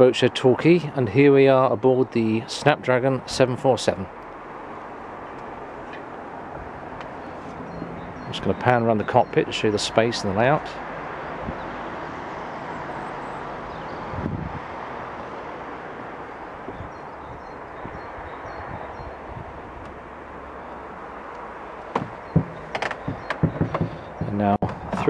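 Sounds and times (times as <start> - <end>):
outdoor background noise: 0.0 - 25.0
sharp knocks: 21.8 - 25.0.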